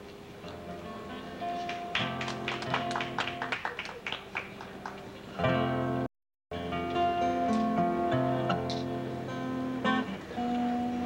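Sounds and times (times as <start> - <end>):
acoustic guitar picking notes: 0.5 - 3.4, 4.4 - 11.0.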